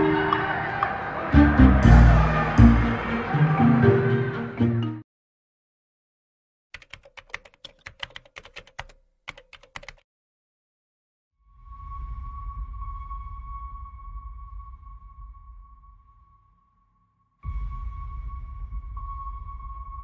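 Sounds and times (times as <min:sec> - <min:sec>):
keyboard typing clicks: 0:06.8 - 0:10.0.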